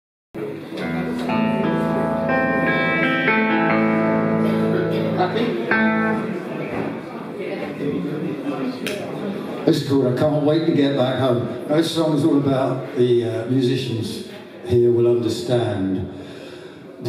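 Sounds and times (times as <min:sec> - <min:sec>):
electric guitar and keyboard chords: 0:00.4 - 0:06.9
room chatter: 0:00.4 - 0:14.6.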